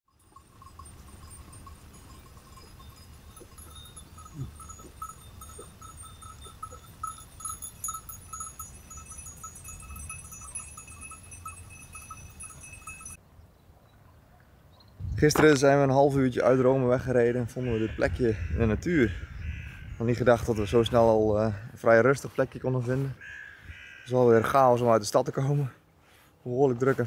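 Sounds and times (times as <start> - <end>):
sheep bells clinking: 0.1 - 13.2, 19.5 - 21.6.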